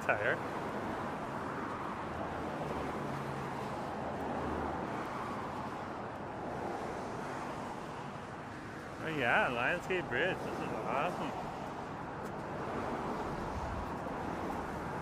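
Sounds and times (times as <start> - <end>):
tyres hissing on road: 9.0 - 11.6.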